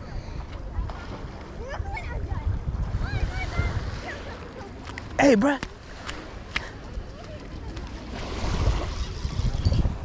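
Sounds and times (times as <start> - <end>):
small waves lapping on shore: 0.0 - 10.0
wind on microphone: 0.0 - 10.0.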